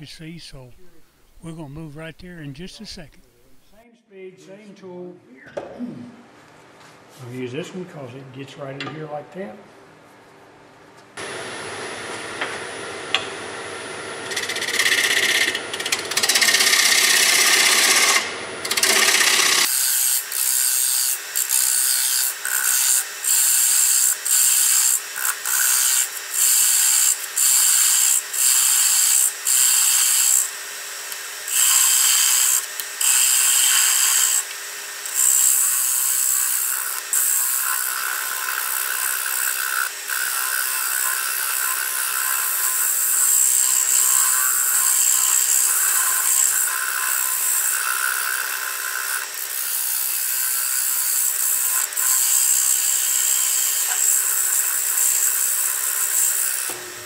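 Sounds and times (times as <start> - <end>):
gouge cutting wood on lathe: 13.0 - 57.0.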